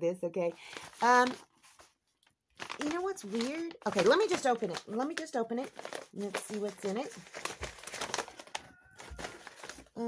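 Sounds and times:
paper or plastic crinkling: 0.6s - 10.0s.

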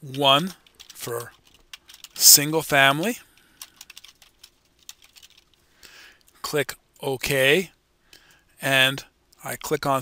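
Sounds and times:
computer keyboard typing: 0.0s - 2.4s, 3.3s - 5.6s.

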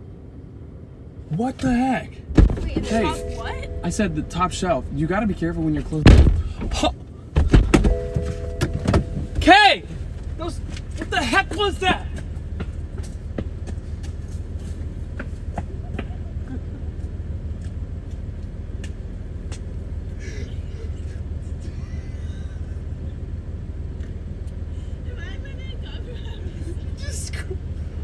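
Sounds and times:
car engine idling: 0.0s - 28.0s.

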